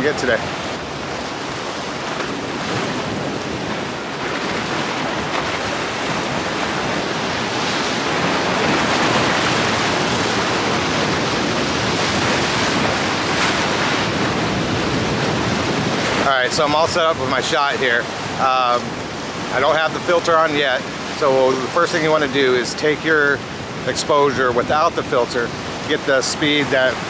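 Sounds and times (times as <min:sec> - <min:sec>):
surf washing against rocks: 0:00.0 - 0:27.0.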